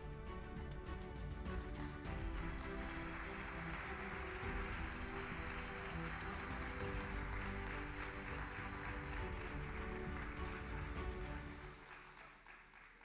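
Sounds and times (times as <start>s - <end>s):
music with held notes: 0.0s - 12.2s
audience applauding: 2.0s - 13.0s.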